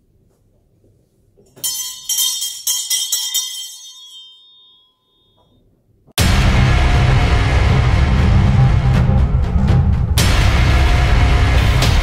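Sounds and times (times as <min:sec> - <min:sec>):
hand bell ringing: 0:01.5 - 0:05.6.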